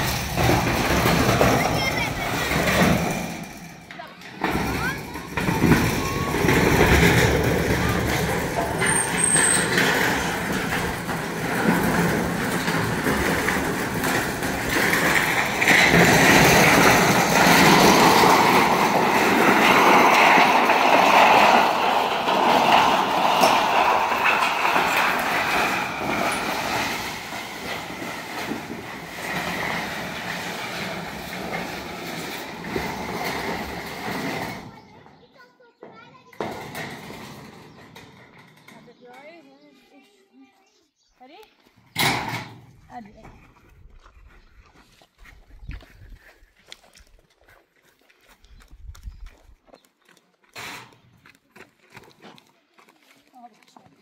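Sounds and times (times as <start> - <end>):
metal sheet scraping over gravel: 0.0 - 35.5, 36.4 - 39.7, 50.5 - 51.2.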